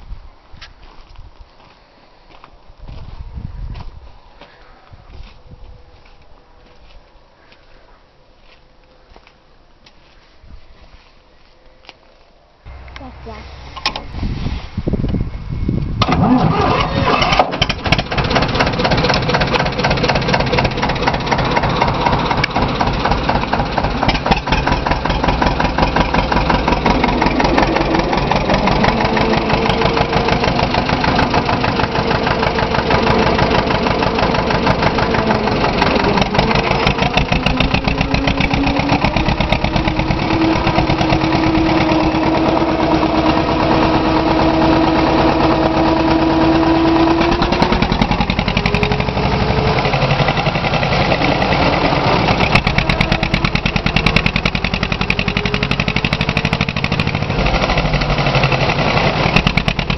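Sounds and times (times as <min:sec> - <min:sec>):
diesel tractor engine running: 0:12.7 - 0:59.9.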